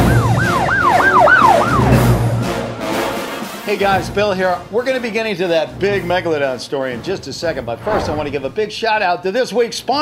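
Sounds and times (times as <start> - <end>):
siren yelping: 0.0 - 2.1
low rumble: 7.8 - 8.7.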